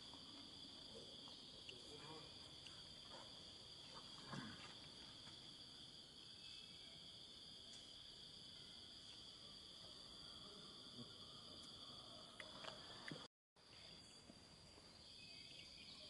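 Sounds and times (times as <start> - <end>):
faint insect chorus drone: 0.0 - 16.0.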